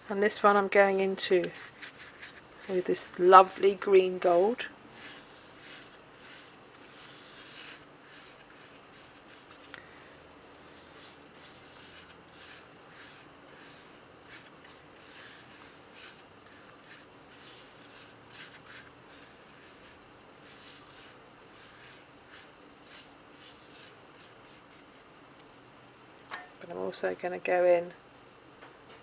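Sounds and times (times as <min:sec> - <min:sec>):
paintbrush scrubbing rough paper: 0:01.3 - 0:25.1.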